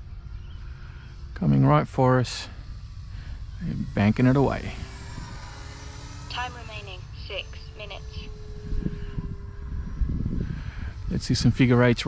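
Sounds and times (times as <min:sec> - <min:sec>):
distant model plane motor hum: 0:00.0 - 0:01.8, 0:02.5 - 0:12.0
wind on microphone: 0:07.3 - 0:11.6.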